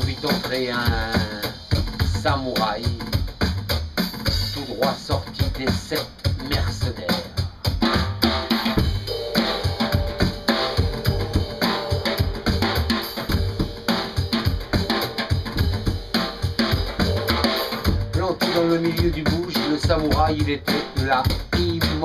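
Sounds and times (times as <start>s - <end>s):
drum kit groove: 0.0s - 22.0s
held pitched note: 8.8s - 18.3s.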